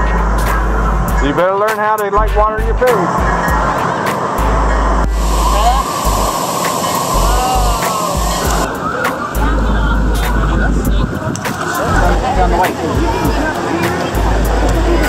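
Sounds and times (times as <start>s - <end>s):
water crashing down: 3.0s - 9.2s.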